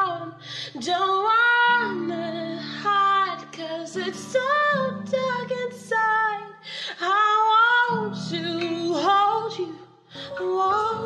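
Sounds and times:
woman singing slow melody: 0:00.0 - 0:11.0.

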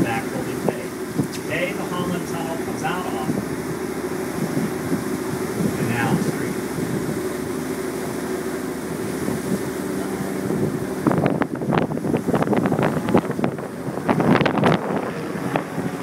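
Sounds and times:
boat engine humming: 0:00.0 - 0:16.0
water noise: 0:00.0 - 0:16.0
wind buffeting microphone: 0:00.0 - 0:16.0.

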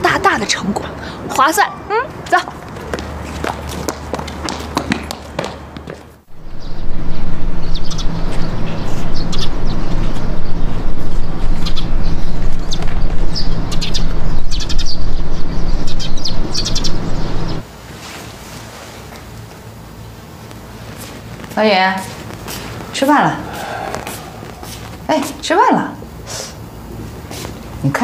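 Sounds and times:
birds chirping: 0:06.3 - 0:17.6, 0:22.7 - 0:25.8
low hum: 0:06.3 - 0:17.6, 0:19.4 - 0:27.0
steady outdoor rushing: 0:22.3 - 0:25.4.

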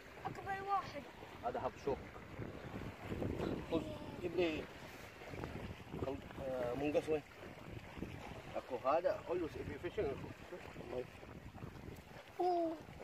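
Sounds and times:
wind rushing over microphone: 0:01.7 - 0:06.8, 0:09.2 - 0:12.2.

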